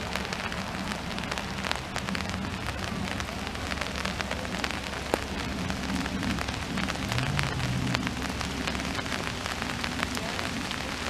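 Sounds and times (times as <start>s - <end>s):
raindrops ticking near microphone: 0.0s - 11.0s
steady rain: 0.0s - 11.0s.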